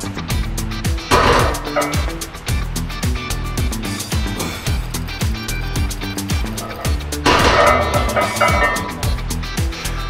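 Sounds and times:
music with kick drums and hi-hats: 0.0 - 10.0
barbell plates clanging on floor: 1.1 - 2.2, 6.5 - 9.2.

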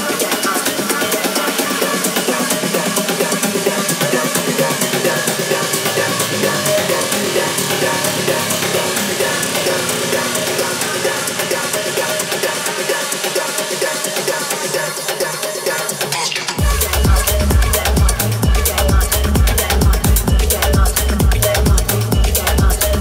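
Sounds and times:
house music with driving drum beat: 0.0 - 23.0
layered synth tones: 1.9 - 13.4.

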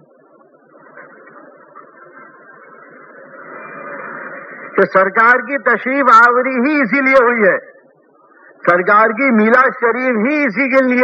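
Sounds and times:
faint background noise: 0.0 - 11.0
man preaching: 4.8 - 7.8, 8.6 - 11.0.

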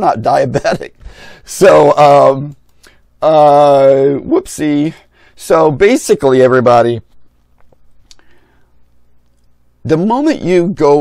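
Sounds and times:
low room hum: 0.0 - 11.0
faint breathing: 1.0 - 1.5, 2.7 - 3.2, 5.0 - 5.4, 8.1 - 9.0
mouth clicks: 8.0 - 8.3.

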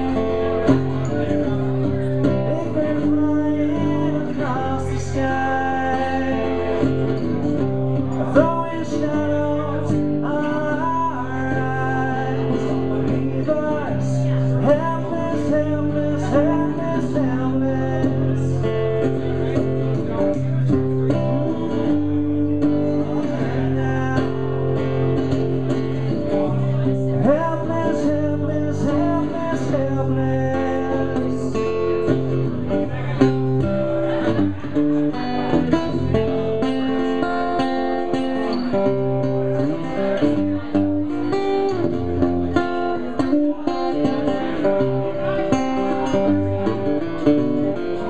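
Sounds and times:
solo guitar chords: 0.0 - 48.0.

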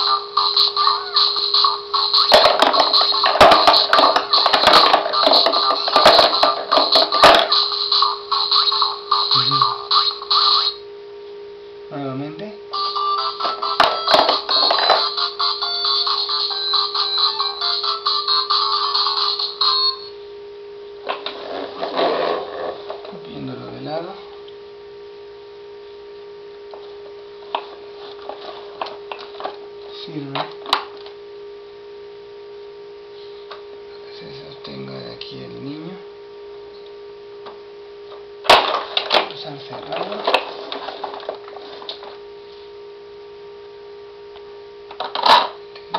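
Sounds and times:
electronic toy melody: 0.0 - 10.8, 12.7 - 20.1
electrical hum: 0.0 - 45.9.

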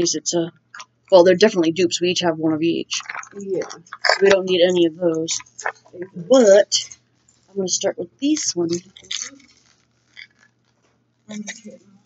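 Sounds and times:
plastic crinkling and rustling: 2.9 - 6.1, 6.8 - 7.6, 8.4 - 11.8.

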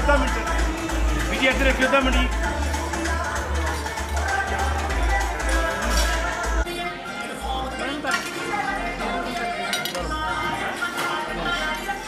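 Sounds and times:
background music: 0.0 - 12.0
cutlery and dishes clinking: 5.5 - 6.3, 7.9 - 8.6, 9.3 - 11.8.

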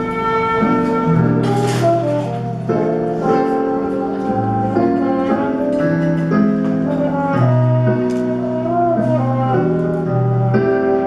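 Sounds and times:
piano: 0.0 - 11.0
slow bass line: 0.0 - 11.0
trombone melody: 0.0 - 11.0.

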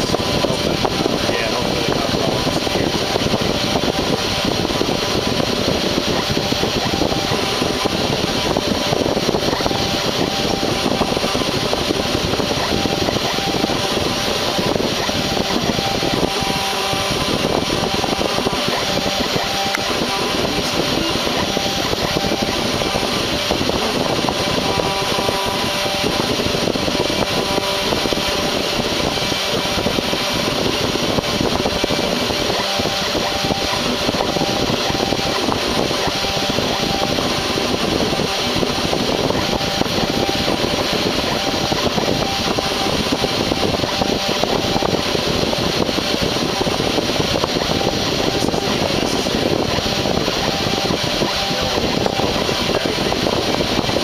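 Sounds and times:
router spindle whirring: 0.0 - 54.0.

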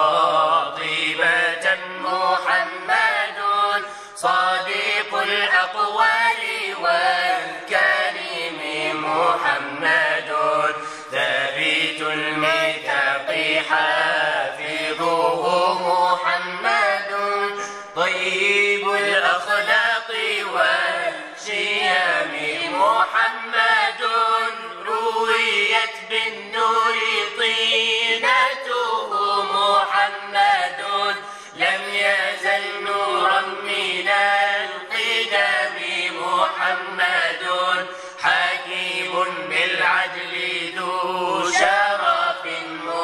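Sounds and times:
voices chanting a wavering melody: 0.0 - 43.0.

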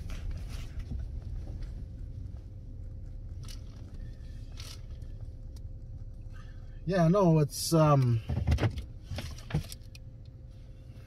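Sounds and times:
steady low hum: 0.0 - 11.0
knocks and clicks in car cab: 8.0 - 9.8.

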